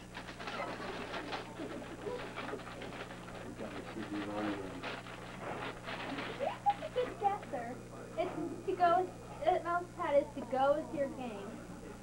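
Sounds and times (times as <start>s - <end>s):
wrapping paper crinkling: 0.0s - 7.4s
steady low hum: 0.0s - 12.0s
soft murmured voices: 0.4s - 12.0s.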